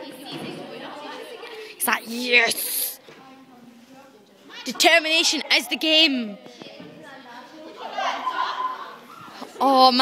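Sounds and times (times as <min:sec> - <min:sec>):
indistinct chatter echoing: 0:00.0 - 0:10.0.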